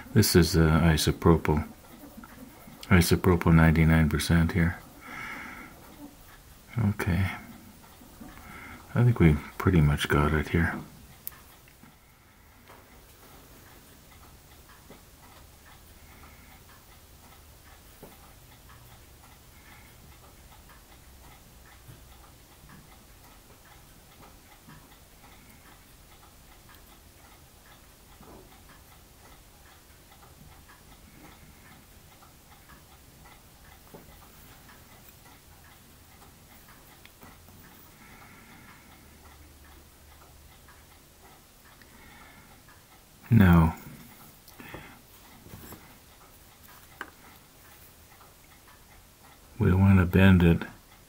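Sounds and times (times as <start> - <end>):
faint ticking: 0.0 - 51.0
low room hum: 0.0 - 51.0.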